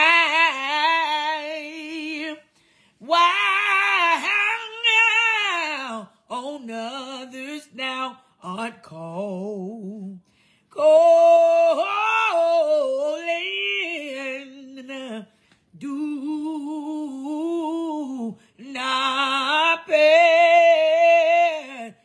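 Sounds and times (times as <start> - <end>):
woman singing a cappella: 0.0 - 22.0.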